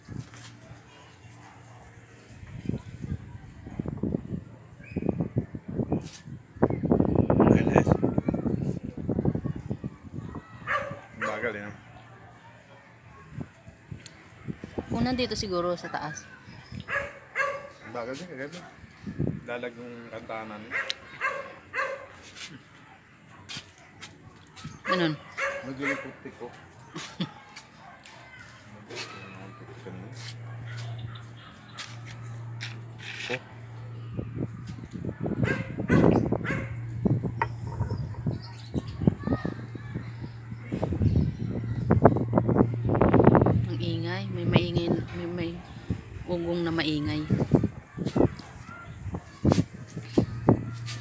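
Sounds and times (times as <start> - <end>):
dog barking: 10.6 - 11.5, 16.8 - 17.9, 20.7 - 22.2, 24.6 - 26.2, 30.2 - 31.9, 35.4 - 36.9, 47.9 - 49.4
steady low hum: 29.4 - 48.4, 49.0 - 51.0.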